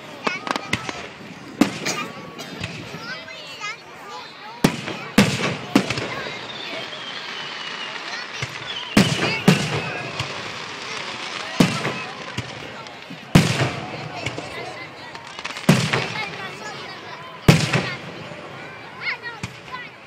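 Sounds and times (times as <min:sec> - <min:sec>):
fireworks booming with echo: 0:00.0 - 0:20.0.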